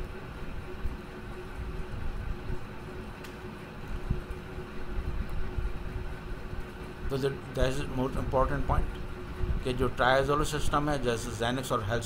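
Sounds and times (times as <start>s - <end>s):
faint constant hum: 0.0s - 12.0s
low background rumble: 0.0s - 12.0s.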